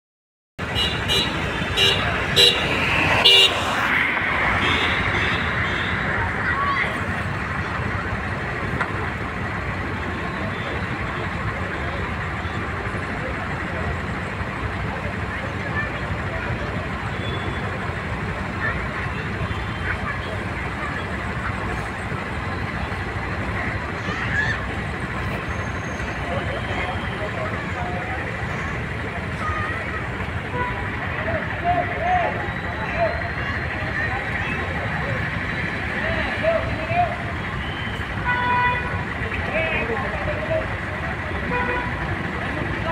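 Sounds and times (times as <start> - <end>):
road traffic noise: 0.6 - 42.9.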